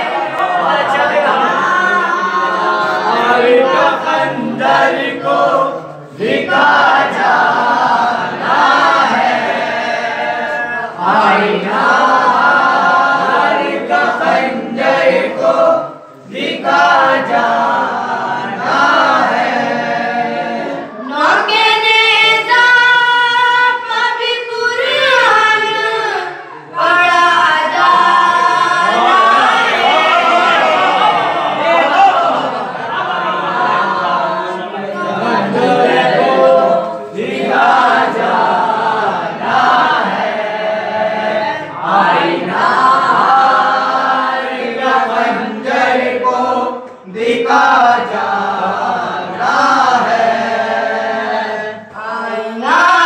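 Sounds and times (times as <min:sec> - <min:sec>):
boys singing mourning chant: 0:00.0 - 0:53.0.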